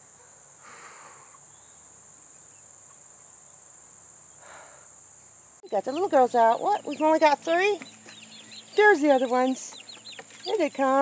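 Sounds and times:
insect chorus trilling: 0:00.2 - 0:11.0.

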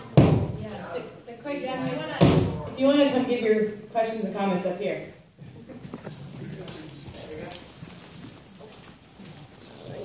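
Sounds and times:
murmur of voices in a hall: 0:00.0 - 0:10.0.

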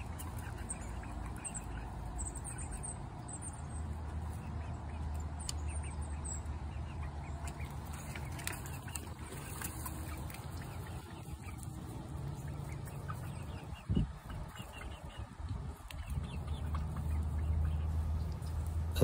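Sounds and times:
hens clucking softly: 0:00.0 - 0:19.0
wind rumble on microphone: 0:13.5 - 0:16.7.

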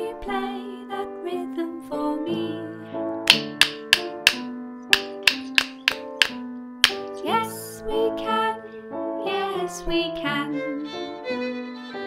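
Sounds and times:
children's song: 0:00.0 - 0:11.0
wooden rhythm sticks struck: 0:03.3 - 0:07.2.

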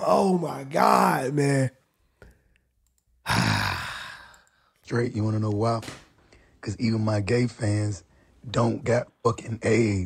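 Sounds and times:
man sighing: 0:03.2 - 0:04.7.

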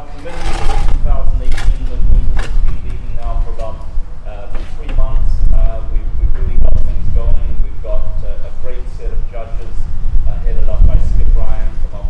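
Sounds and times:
man speaking: 0:00.0 - 0:12.0
steady low rumble: 0:00.0 - 0:12.0.

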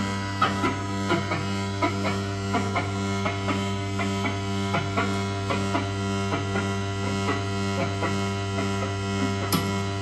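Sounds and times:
low electronic drone: 0:00.0 - 0:10.0.

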